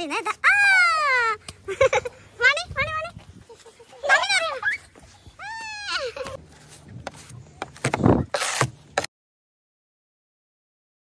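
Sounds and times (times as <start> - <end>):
children squealing: 4.0 - 6.2.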